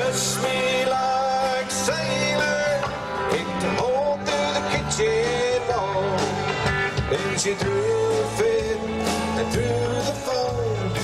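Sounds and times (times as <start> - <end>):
country song with band: 0.0 - 11.0.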